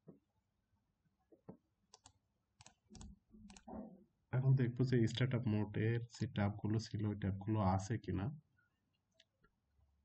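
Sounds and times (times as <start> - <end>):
computer mouse clicking: 1.9 - 3.7.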